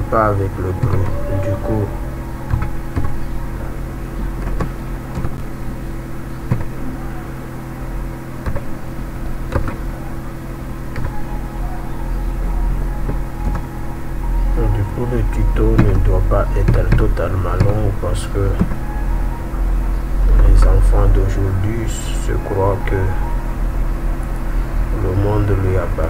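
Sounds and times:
voices: 0:00.0 - 0:04.2, 0:06.5 - 0:26.0
low electrical hum: 0:00.0 - 0:26.0.

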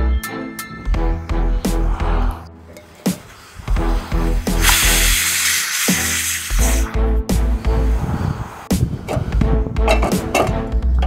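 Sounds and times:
pressure cooker venting steam: 0:03.0 - 0:07.0.

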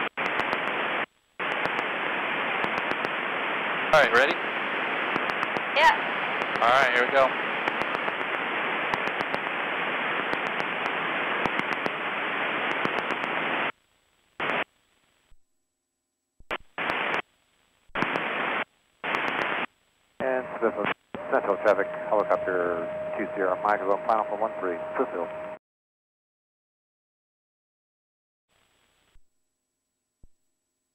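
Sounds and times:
aircraft engine hiss through headset: 0:01.4 - 0:13.6
radio voices: 0:03.9 - 0:04.5, 0:05.1 - 0:09.3, 0:19.0 - 0:25.6
steady tone: 0:20.2 - 0:25.6.

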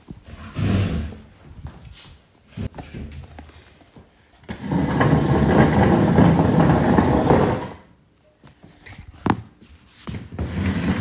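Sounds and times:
stool scraping across tiled floor: 0:00.2 - 0:01.3, 0:04.4 - 0:08.0, 0:10.0 - 0:11.0.

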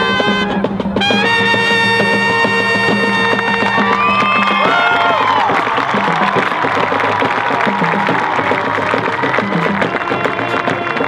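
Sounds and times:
brass notes sliding in pitch: 0:00.0 - 0:06.7
drums beating: 0:00.0 - 0:11.0
marching band playing: 0:00.0 - 0:11.0.

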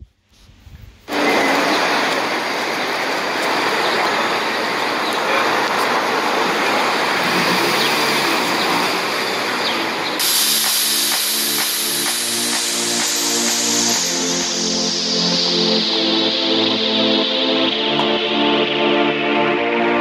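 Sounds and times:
loud rushing hiss: 0:01.1 - 0:18.9.

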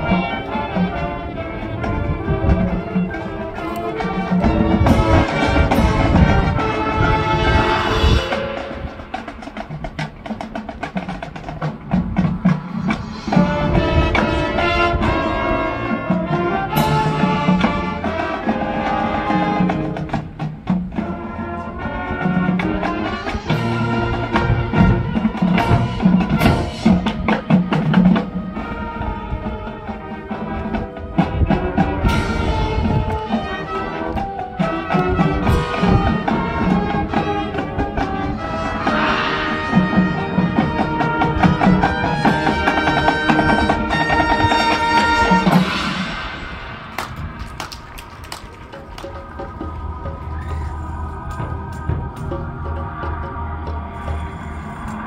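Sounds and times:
brass sustained chords: 0:00.0 - 0:09.4, 0:12.6 - 0:27.3, 0:28.4 - 0:47.8
marching band playing: 0:00.0 - 0:55.0.

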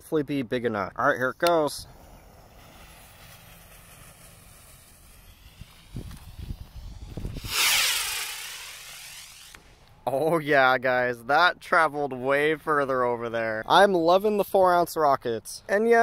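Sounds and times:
fuse hissing: 0:01.8 - 0:09.8
rocket motor rushing hiss: 0:01.8 - 0:09.9
low rumble of rocket lift-off: 0:01.8 - 0:10.0.

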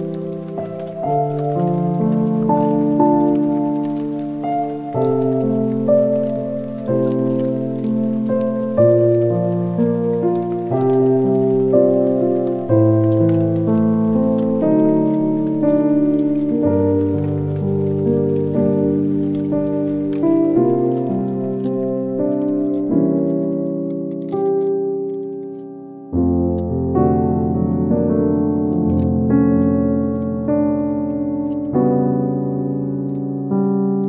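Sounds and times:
faint steady patter: 0:00.0 - 0:34.0
sustained keyboard chords: 0:00.0 - 0:34.0.

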